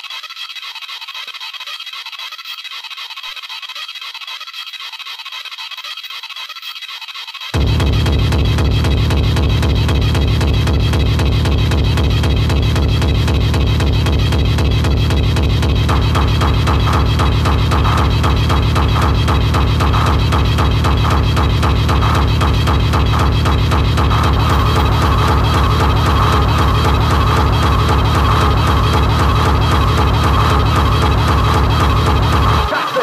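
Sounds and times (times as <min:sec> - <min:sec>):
sustained synth: 0:07.5 - 0:33.0
fast kick drum: 0:07.6 - 0:33.0
heavy bass pattern: 0:07.6 - 0:33.0.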